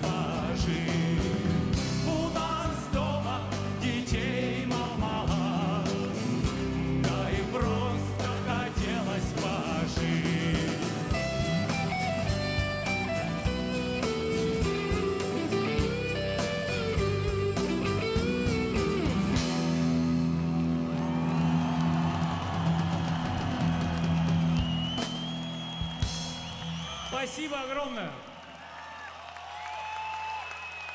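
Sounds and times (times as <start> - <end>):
electric guitar: 0.0 - 24.6
drum kit: 0.0 - 26.8.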